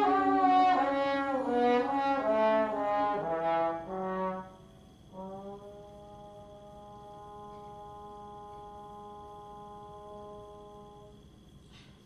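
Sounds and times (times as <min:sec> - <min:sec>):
trombone long note: 0:00.0 - 0:11.2.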